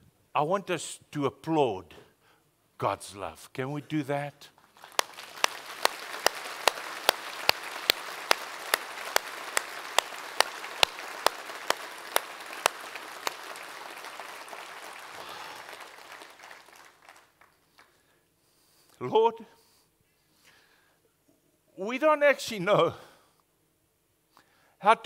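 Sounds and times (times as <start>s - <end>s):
close rhythmic hand claps: 4.6s - 18.0s
congregation applauding: 4.6s - 18.0s.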